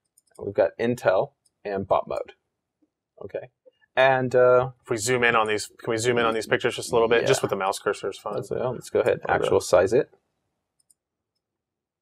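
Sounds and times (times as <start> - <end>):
computer mouse click: 10.8 - 11.5.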